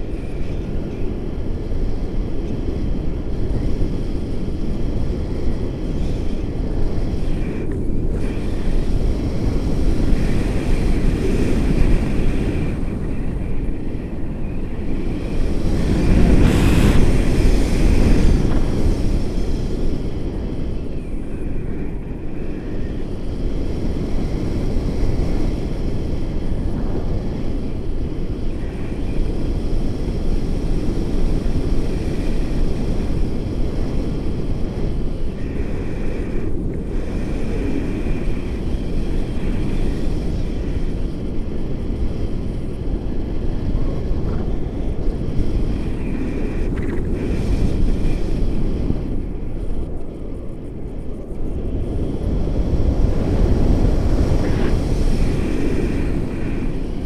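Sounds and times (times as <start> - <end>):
wind rumbling on microphone: 0.0 - 57.0.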